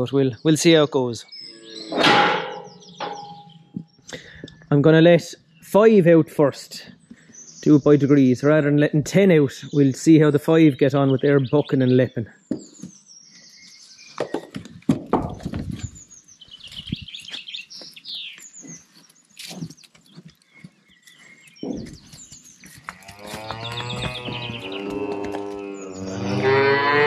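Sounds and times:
calf mooing: 23.0 - 27.0.

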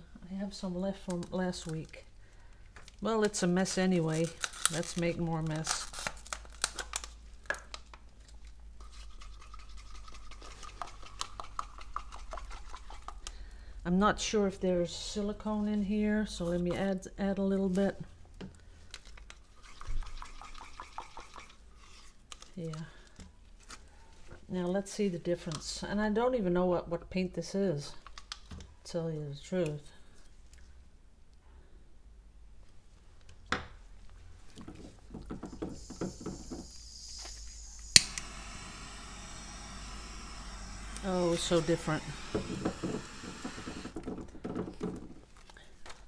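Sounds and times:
paint stirred in plastic cup: 8.8 - 13.4, 19.5 - 21.6
torch flame hissing: 35.5 - 44.0
torch ignition click: 37.7 - 38.8.

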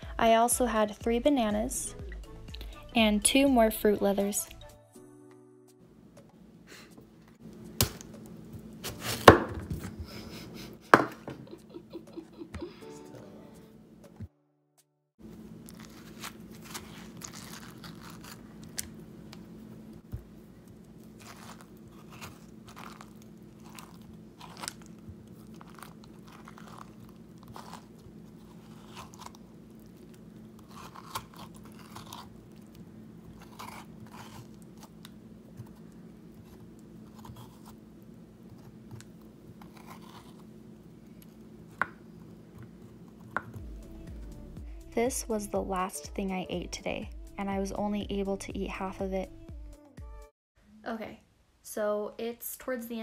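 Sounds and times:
knife cutting melon: 7.8 - 10.0, 15.7 - 19.4, 20.2 - 37.8, 38.4 - 40.5
metal spoon scraping melon: 39.6 - 40.5.

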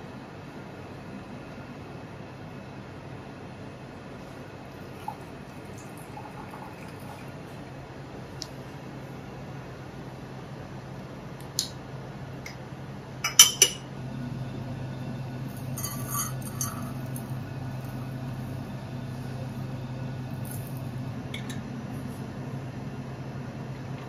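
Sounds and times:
steady low hum: 0.0 - 24.0
tea pouring: 4.7 - 7.6, 15.4 - 21.6
cups and glassware clinking: 13.2 - 13.9, 15.6 - 17.3.

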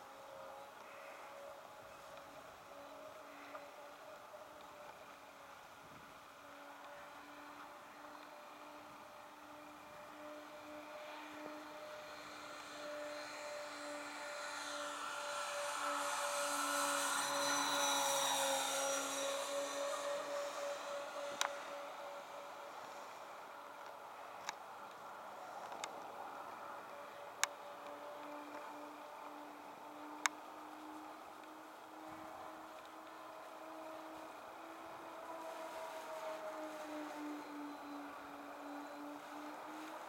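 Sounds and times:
model airplane propellers droning: 0.0 - 40.0.

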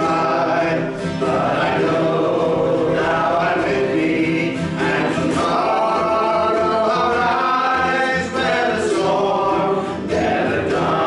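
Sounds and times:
acoustic guitar: 0.0 - 11.0
congregation singing a hymn: 0.0 - 11.0.

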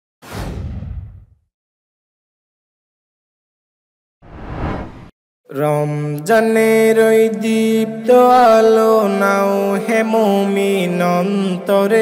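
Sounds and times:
whoosh sound effect: 4.2 - 5.1.

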